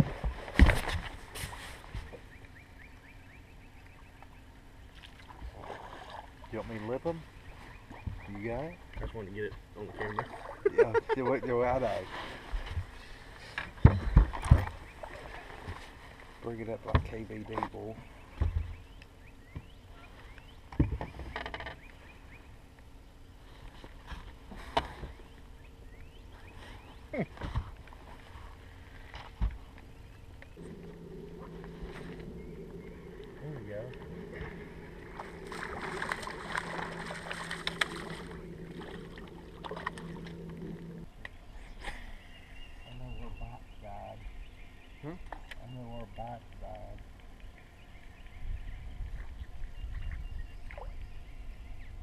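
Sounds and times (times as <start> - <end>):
knocks and bumps on a boat: 13.7 - 14.8, 16.8 - 17.7, 20.7 - 21.8
motor hum: 29.5 - 41.4.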